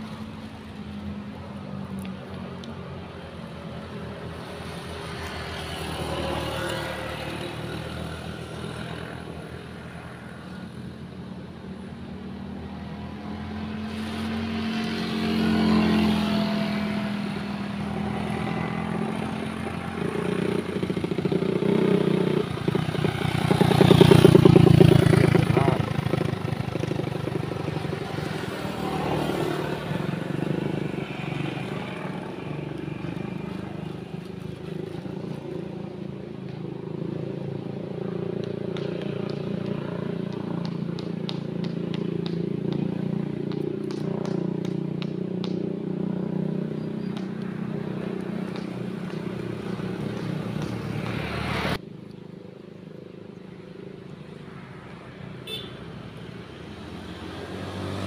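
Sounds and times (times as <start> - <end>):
vehicle engines passing: 0.0 - 58.0.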